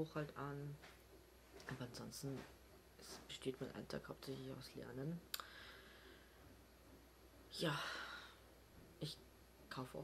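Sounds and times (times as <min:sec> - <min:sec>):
faint breath in: 0:05.4 - 0:06.5.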